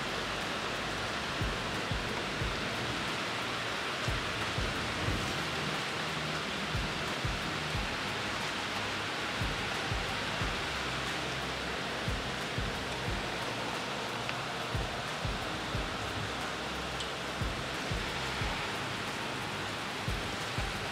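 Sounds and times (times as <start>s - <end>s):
background music with soft beat: 0.0s - 20.9s
rain on a metal roof: 0.0s - 20.9s.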